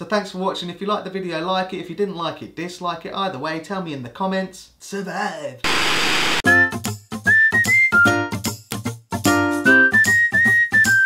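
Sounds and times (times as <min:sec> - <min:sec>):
whistled tune: 0:06.5 - 0:08.5, 0:09.5 - 0:11.0.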